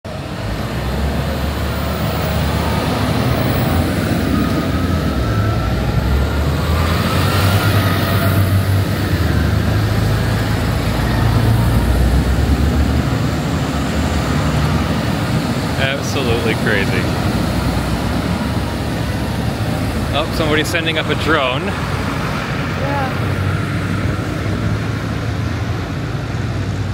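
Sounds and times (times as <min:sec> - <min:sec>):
tractor diesel engines rumbling: 0:00.0 - 0:26.9.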